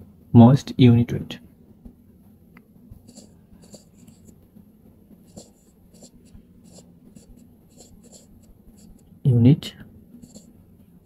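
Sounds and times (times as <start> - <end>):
low steady hum: 0.0 - 11.0
stylus scratching on touchscreen: 3.0 - 4.4, 5.2 - 9.0, 10.2 - 10.5.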